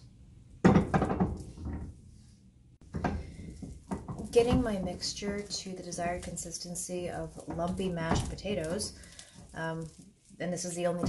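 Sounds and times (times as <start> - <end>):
paddle stirring thick dough: 2.8 - 11.0.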